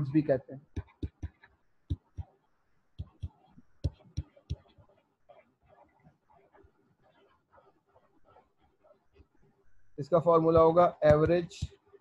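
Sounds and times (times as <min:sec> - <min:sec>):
stylus knocking on tablet screen: 0:00.7 - 0:02.3, 0:03.0 - 0:04.9, 0:10.4 - 0:11.8
faint stylus scratching: 0:03.0 - 0:09.6.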